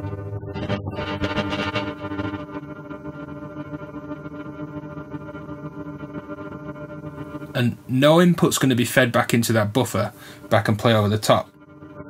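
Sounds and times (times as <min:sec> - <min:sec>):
sustained guitar chord drone: 0:00.0 - 0:12.0.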